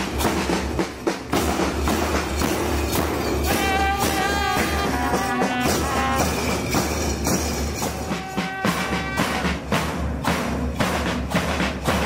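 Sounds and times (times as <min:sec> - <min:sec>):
marching drums beating: 0:00.0 - 0:12.0.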